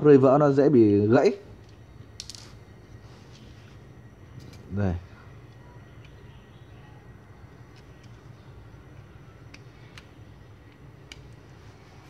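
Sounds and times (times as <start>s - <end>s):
low room hum: 0.0s - 12.0s
light clicks of metal parts: 8.9s - 11.6s.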